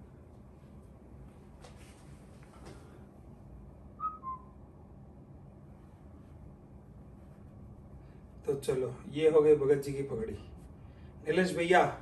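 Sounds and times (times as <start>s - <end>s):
low room hum: 0.0s - 12.0s
two-note falling whistle tone: 4.0s - 4.6s.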